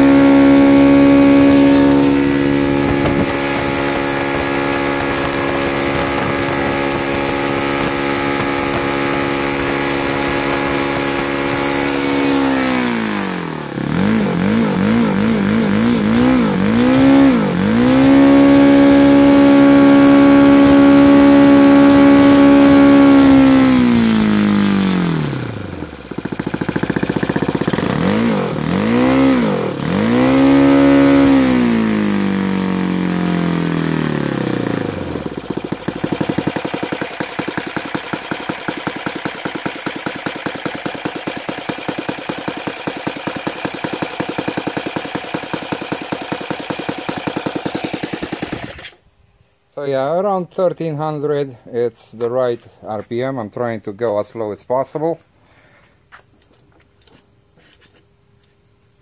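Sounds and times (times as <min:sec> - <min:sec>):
model aircraft engine revving: 0:00.0 - 0:49.0.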